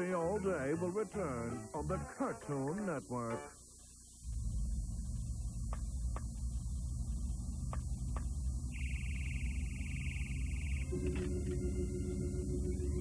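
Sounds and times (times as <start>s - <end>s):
faint high-pitched tape squeal: 0.0s - 13.0s
steady low hum: 3.4s - 13.0s
high buzzing tone: 8.6s - 13.0s.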